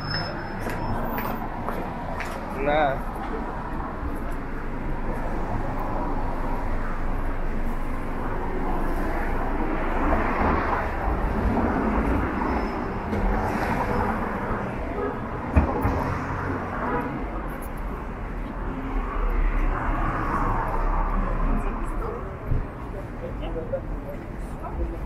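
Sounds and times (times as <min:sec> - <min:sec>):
road traffic hum: 0:00.0 - 0:25.0.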